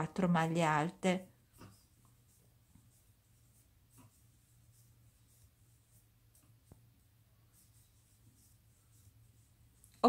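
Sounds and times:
yarn rustling over crochet hook: 0:00.2 - 0:10.0.

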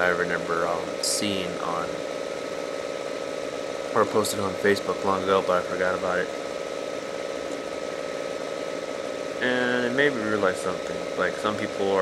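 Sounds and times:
steady motor hum: 0:00.0 - 0:12.0.

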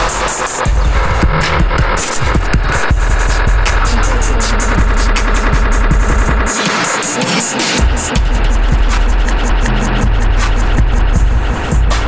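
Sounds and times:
deep bass drone: 0:00.0 - 0:07.0, 0:07.7 - 0:12.0
harsh noise music: 0:00.0 - 0:12.0
stuttering high hiss: 0:00.0 - 0:12.0.

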